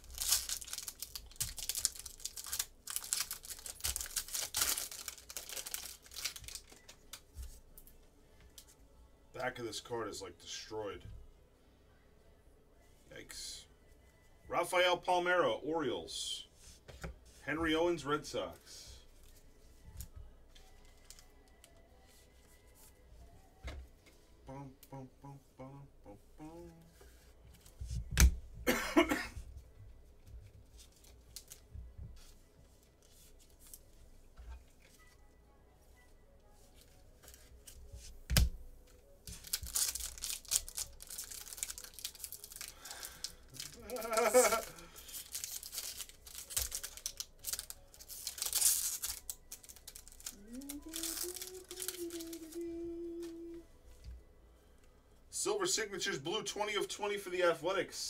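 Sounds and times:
plastic packaging crinkling and tearing: 0:00.0 - 0:07.4, 0:30.7 - 0:31.7, 0:39.2 - 0:53.4
person humming: 0:24.4 - 0:27.0, 0:43.6 - 0:45.0, 0:50.3 - 0:53.8.

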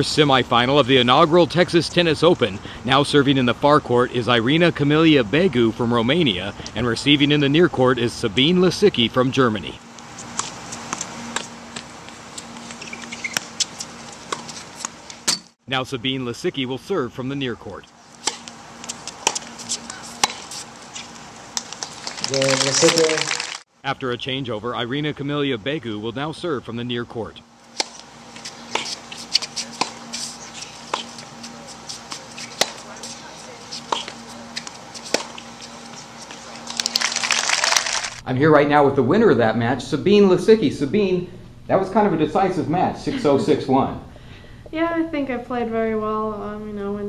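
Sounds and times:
steady low hum: 0:00.0 - 0:37.4, 0:38.1 - 0:47.0
tennis ball hit and bouncing: 0:18.2 - 0:22.0, 0:27.7 - 0:35.5.

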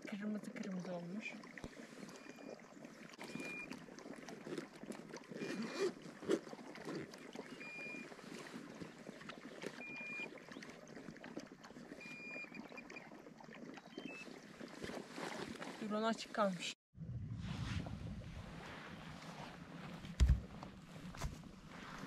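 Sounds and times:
bag rustling and knocks: 0:19.9 - 0:21.4.

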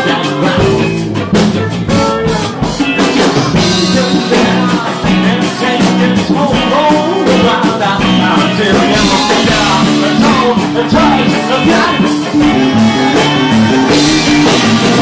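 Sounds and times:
drum kit beat: 0:00.0 - 0:15.0
guitar: 0:00.0 - 0:15.0
singing: 0:00.0 - 0:15.0.

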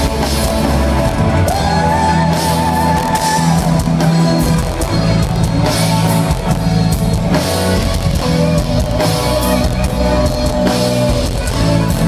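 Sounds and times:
bass: 0:00.0 - 0:12.0
drums: 0:00.0 - 0:12.0
electric guitar: 0:00.0 - 0:12.0.

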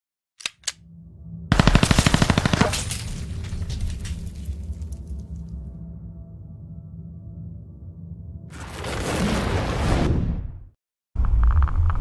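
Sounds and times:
low steady drone: 0:00.8 - 0:08.5.

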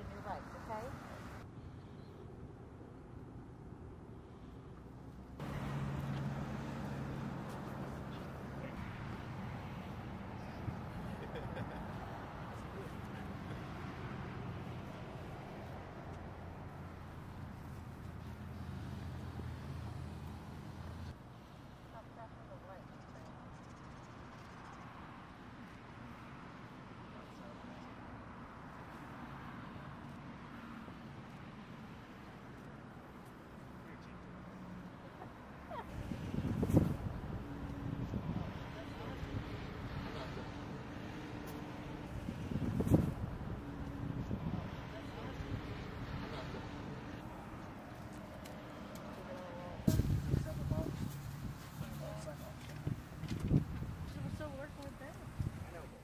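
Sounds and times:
distant indistinct voices: 0:43.2 - 0:53.2.

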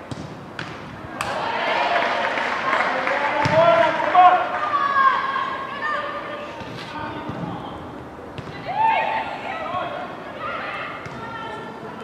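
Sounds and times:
women shouting: 0:04.5 - 0:06.3, 0:08.6 - 0:09.7.

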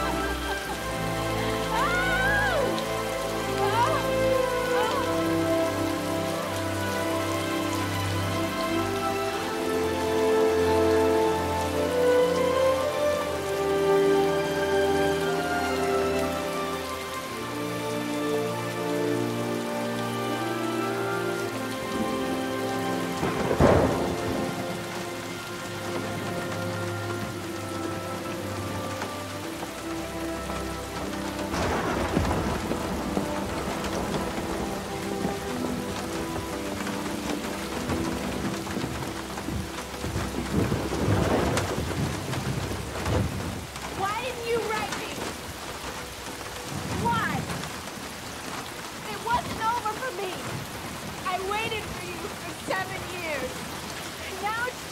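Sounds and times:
heavy rain: 0:00.0 - 0:54.9
slow orchestral film score: 0:00.0 - 0:54.9
thunder: 0:23.2 - 0:24.8, 0:31.5 - 0:35.4, 0:37.9 - 0:43.8.

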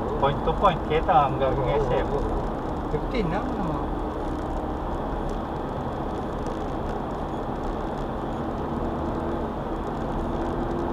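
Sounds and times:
car road and engine noise: 0:00.0 - 0:10.9
tyres running on pavement: 0:00.0 - 0:10.9.

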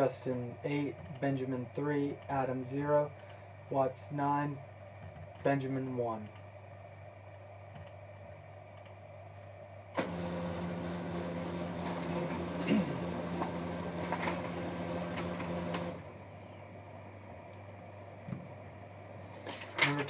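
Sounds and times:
printer click: 0:10.0 - 0:16.0
printer motor running: 0:10.0 - 0:16.1.

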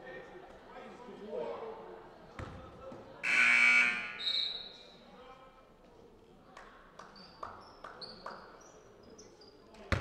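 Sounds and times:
voices in a hall: 0:00.0 - 0:10.0
scoreboard buzzer: 0:03.2 - 0:04.2.

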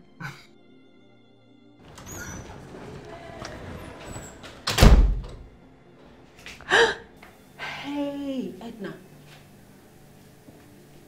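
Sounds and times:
door shutting with heavy thud: 0:01.8 - 0:05.6.

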